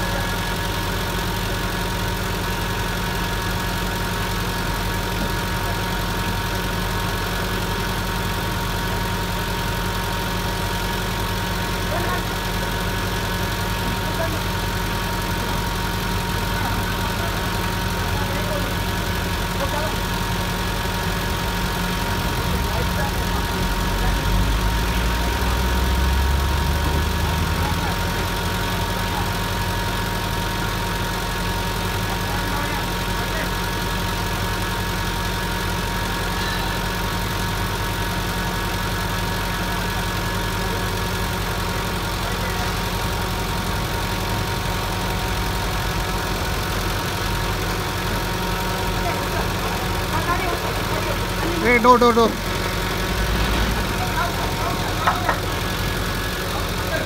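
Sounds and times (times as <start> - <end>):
truck engine idling: 0.0 - 57.0.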